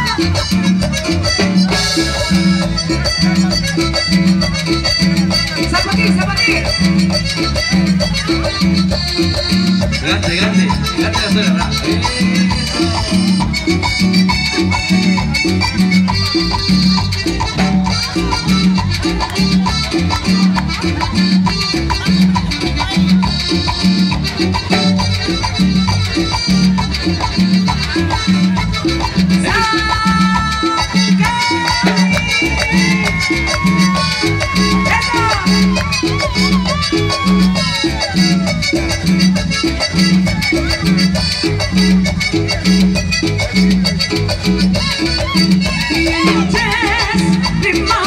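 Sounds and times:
latin dance band over speakers: 0.0s - 48.0s.

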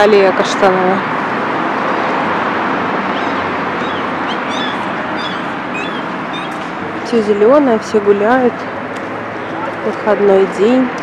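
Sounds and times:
outdoor background hiss: 0.0s - 11.0s
small birds chirping: 3.1s - 6.8s.

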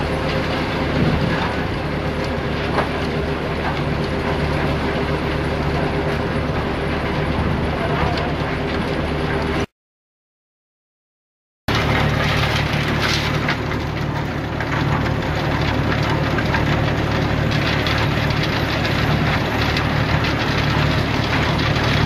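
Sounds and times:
low machine hum: 0.0s - 9.7s, 11.7s - 22.0s
crushed rock rattling: 11.7s - 22.0s.

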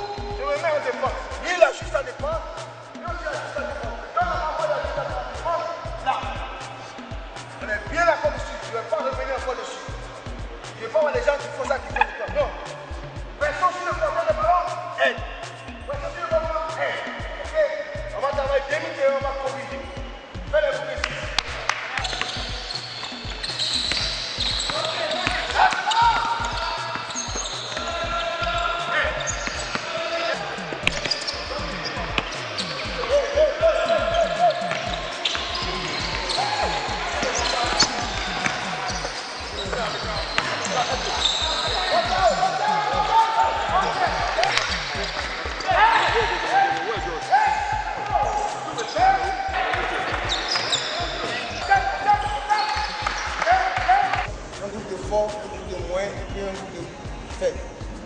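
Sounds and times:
voices in a hall: 0.0s - 58.0s
basketballs bouncing on court floor: 20.4s - 46.5s, 47.5s - 54.3s.

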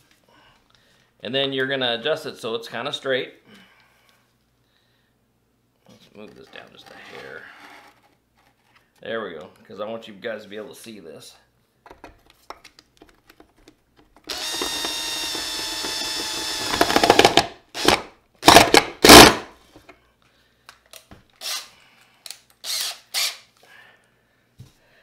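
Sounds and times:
cordless drill driving screw: 14.3s - 19.4s, 21.4s - 21.7s, 22.6s - 23.5s.

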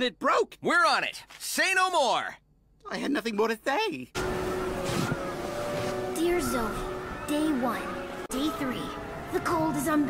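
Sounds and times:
rushing wind: 4.2s - 8.2s
faint sustained music tone: 4.2s - 10.0s.

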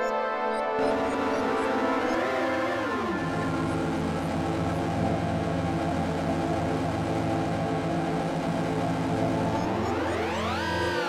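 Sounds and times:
synthesizer chord drone: 0.2s - 11.0s
pulsing low synth note: 0.8s - 11.0s.

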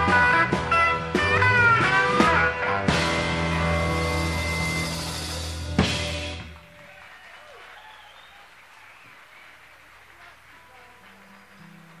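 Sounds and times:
audience calls: 1.6s - 12.0s
audience applause: 4.2s - 12.0s.

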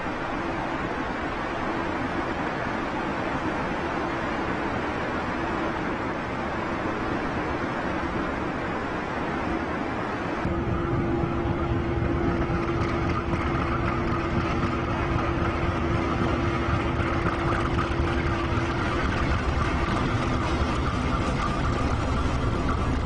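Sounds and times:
diesel locomotive engine rumble: 0.0s - 23.0s
steady hum: 0.0s - 23.0s.

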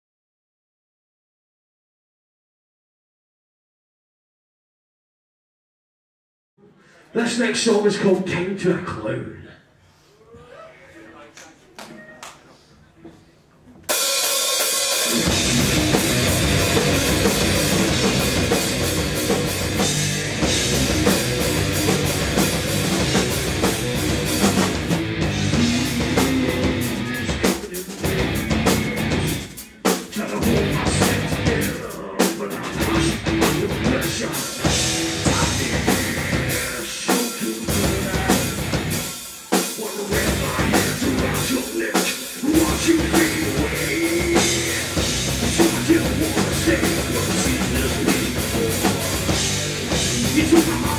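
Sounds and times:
live heavy metal band: 13.9s - 50.9s.

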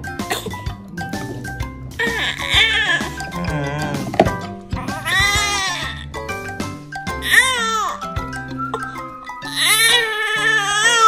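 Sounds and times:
background music: 0.0s - 11.0s
baby crying: 2.0s - 4.1s, 4.7s - 6.2s, 7.1s - 8.1s, 8.8s - 11.0s.

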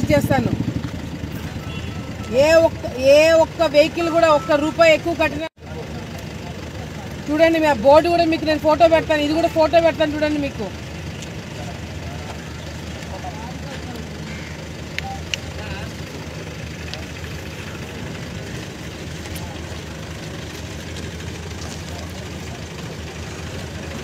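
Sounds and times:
vehicle engine idling: 0.0s - 24.0s.

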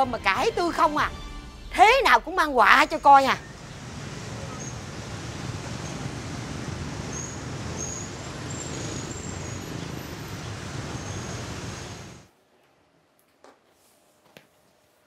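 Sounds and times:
road traffic rumble: 3.0s - 12.3s.

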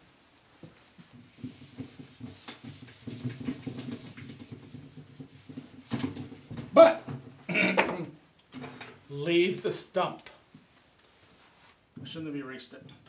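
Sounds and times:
eraser rubbing on whiteboard: 1.0s - 6.6s.

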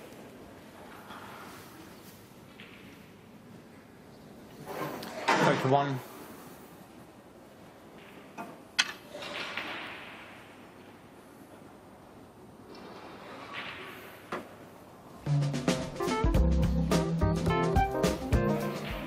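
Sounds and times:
music with bass and drums: 15.3s - 19.0s.

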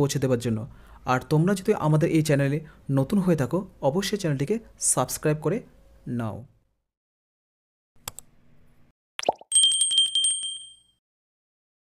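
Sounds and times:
small notification bell ringing: 9.5s - 11.0s.

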